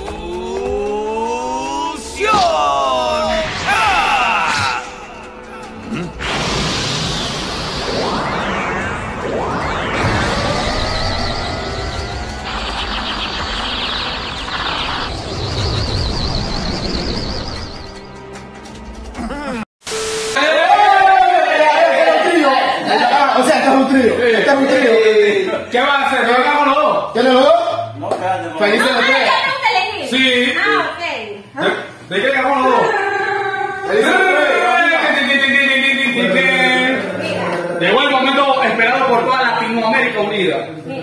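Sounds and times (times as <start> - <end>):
people exclaiming: 1.0 - 5.2, 20.4 - 22.8
rising pitched soundtrack tone: 2.8 - 19.0
steady beep: 7.0 - 18.3
static hiss: 12.4 - 15.3, 19.8 - 20.6.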